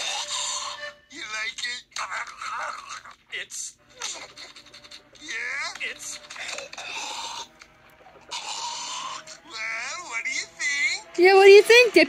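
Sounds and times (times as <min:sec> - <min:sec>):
breathy strained vocal noises: 0:00.0 - 0:01.0, 0:03.9 - 0:11.1.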